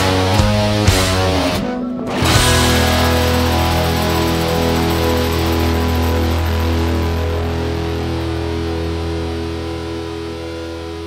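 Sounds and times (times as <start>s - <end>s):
electric guitar chord ringing: 0.0s - 11.0s.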